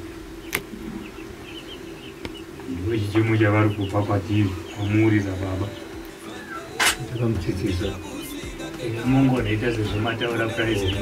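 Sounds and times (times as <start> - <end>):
men talking quietly: 2.6 - 11.0.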